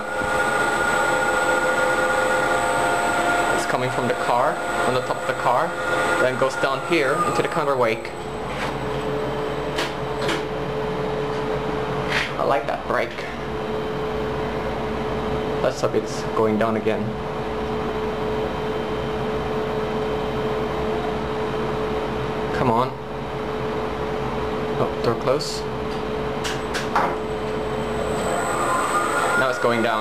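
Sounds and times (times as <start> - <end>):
elevator machinery hum: 0.0 - 12.0, 26.1 - 30.0.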